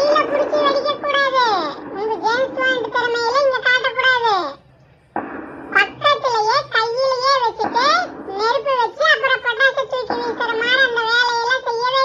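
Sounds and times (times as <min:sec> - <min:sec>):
child speaking: 0:00.0 - 0:04.7, 0:05.7 - 0:12.0.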